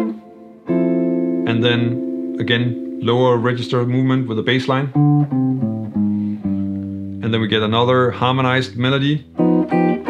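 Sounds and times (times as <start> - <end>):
jazz guitar bass line: 0.0 - 10.0.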